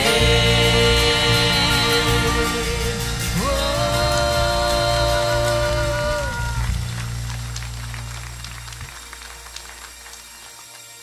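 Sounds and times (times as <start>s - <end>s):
deep held bass note: 0.0s - 9.8s
soft sustained keyboard chord: 0.0s - 11.0s.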